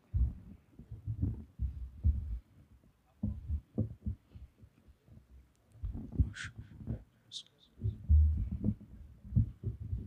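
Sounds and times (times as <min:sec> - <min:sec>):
breath thumps on microphone: 0:07.8 - 0:10.0.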